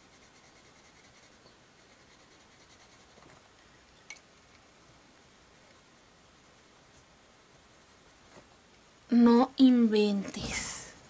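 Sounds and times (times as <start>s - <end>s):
colored pencil scratching on paper: 0.0s - 3.4s, 5.5s - 8.5s.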